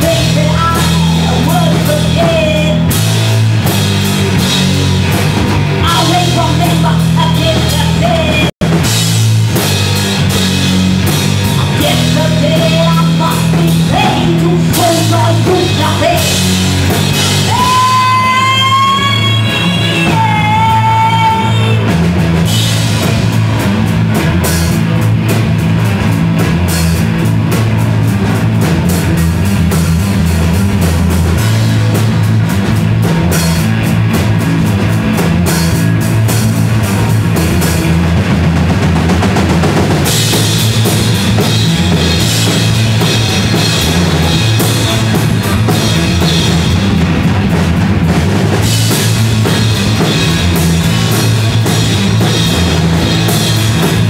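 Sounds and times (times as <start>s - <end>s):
live rock band playing: 0.0s - 54.0s
woman singing: 11.7s - 16.4s, 17.4s - 21.8s.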